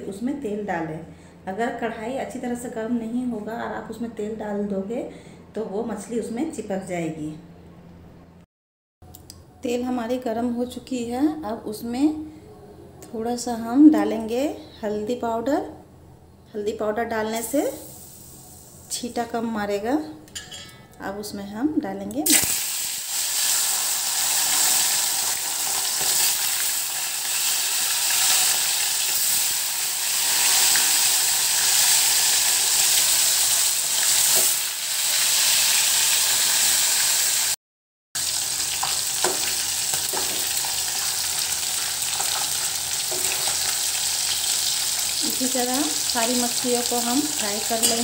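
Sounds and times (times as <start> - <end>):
fish sizzling in hot oil: 17.7 - 18.8, 22.3 - 37.6, 38.2 - 48.0.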